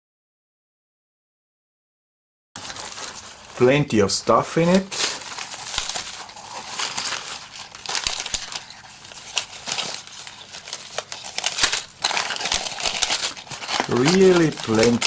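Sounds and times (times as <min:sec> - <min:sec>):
plastic packaging crinkling: 0:02.6 - 0:15.0.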